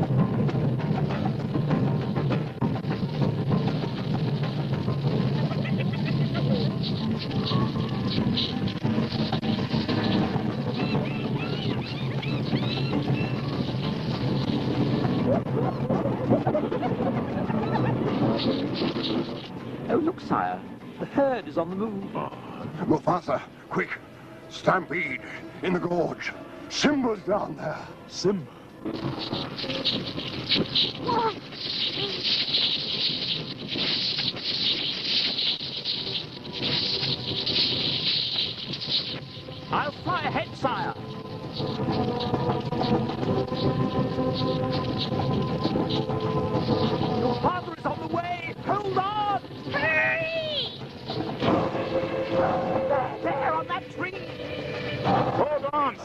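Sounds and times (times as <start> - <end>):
rumble of herd running: 0.0 - 22.9, 28.2 - 56.0
music: 0.0 - 56.0
animal calls: 10.0 - 14.0.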